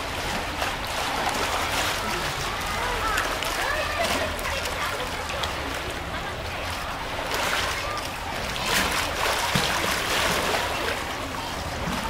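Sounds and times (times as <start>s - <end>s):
distant voices: 0.0s - 12.0s
water splashing and sloshing: 0.0s - 12.0s.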